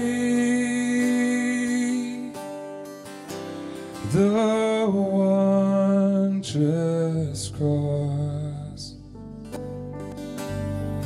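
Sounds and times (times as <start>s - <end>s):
man singing worship music: 0.0s - 2.7s, 3.6s - 9.2s
acoustic guitar: 0.0s - 11.0s.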